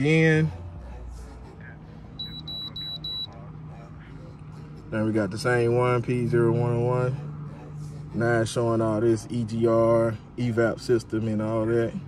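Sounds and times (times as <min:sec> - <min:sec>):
short high-pitched beeps: 0:02.2 - 0:03.3.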